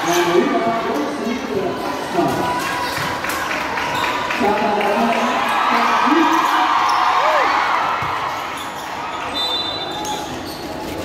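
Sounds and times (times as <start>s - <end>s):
crowd voices in large gym: 0.0s - 11.0s
basketball bouncing on court: 8.0s - 8.3s.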